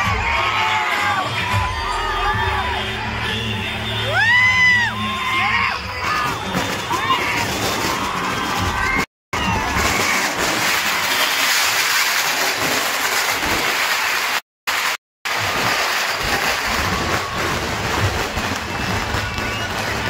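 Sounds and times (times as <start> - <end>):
crowd cheering and shouting: 0.0 - 11.6, 15.6 - 20.0.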